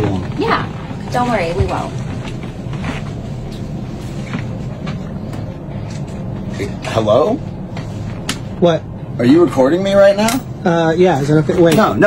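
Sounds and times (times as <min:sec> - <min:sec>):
airliner cabin drone: 0:00.0 - 0:12.0.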